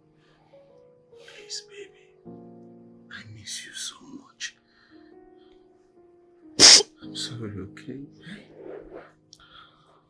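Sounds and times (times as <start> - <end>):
soft background music: 0.0 - 10.0
crying breath burst: 6.6 - 6.9.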